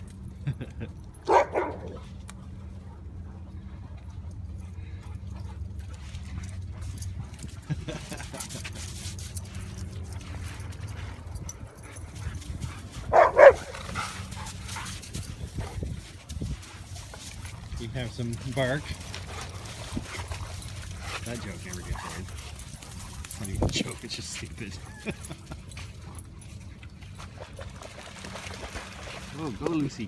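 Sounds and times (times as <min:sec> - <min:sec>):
dog barking: 0:01.3 - 0:02.0, 0:13.1 - 0:13.7.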